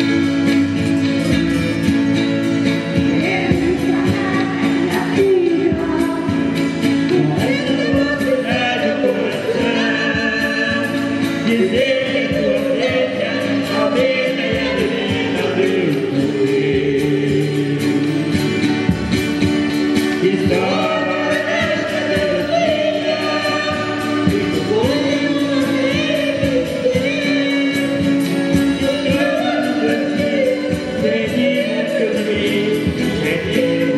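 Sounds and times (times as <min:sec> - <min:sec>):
acoustic guitars: 0:00.0 - 0:33.9
woman singing into a microphone: 0:02.9 - 0:18.1, 0:20.2 - 0:33.9.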